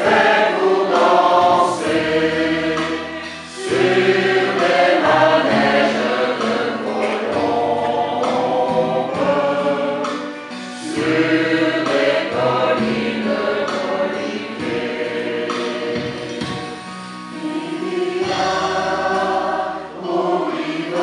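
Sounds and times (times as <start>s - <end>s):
choir singing in parts: 0.0s - 21.0s.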